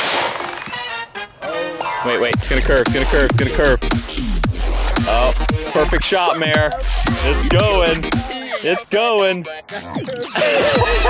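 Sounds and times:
background music: 0.4s - 11.0s.

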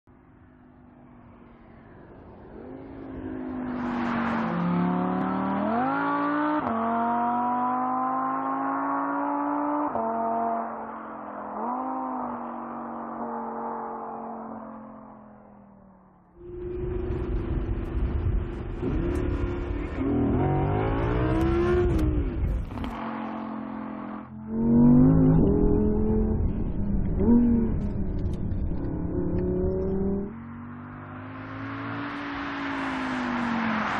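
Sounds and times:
sports car engine accelerating: 1.0s - 33.9s.

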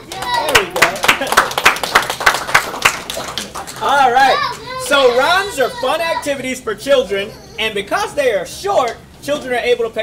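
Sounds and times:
audience clapping: 0.0s - 4.1s.

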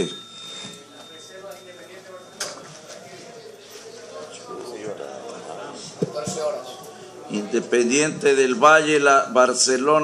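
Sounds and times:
faint high ringing tone: 0.0s - 4.2s
faint murmur of voices: 0.0s - 10.0s.

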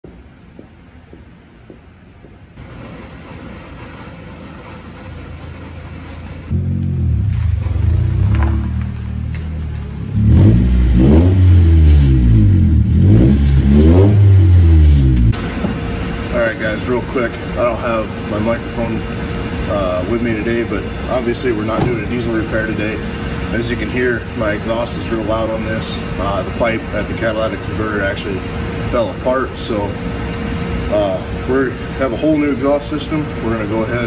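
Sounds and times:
car engine revving loud exhaust: 4.8s - 27.2s.

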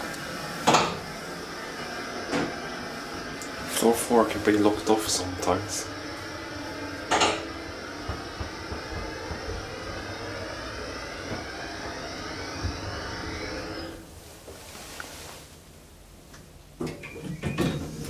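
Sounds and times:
elevator drive hum and whine: 0.0s - 18.0s.

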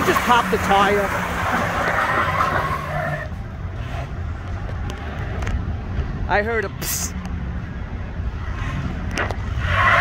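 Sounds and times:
tyres scrubbing on pavement: 0.0s - 3.3s.

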